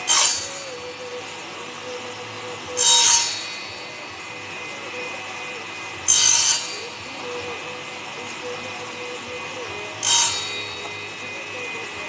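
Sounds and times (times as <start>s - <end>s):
saw cutting wood high-pitched: 0.0s - 12.0s
table saw running: 0.0s - 12.0s.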